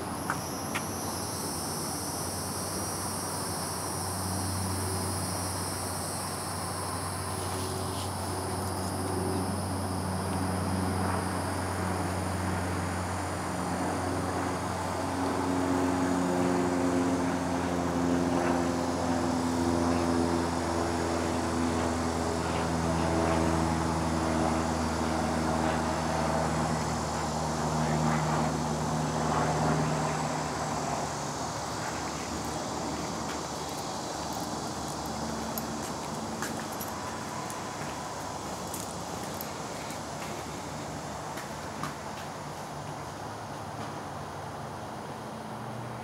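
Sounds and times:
distant engine drone: 0.0 - 46.0.

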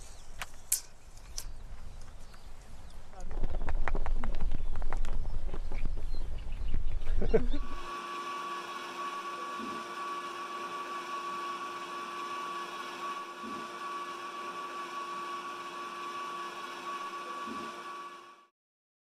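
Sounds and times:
steady high hum: 6.3 - 18.5.

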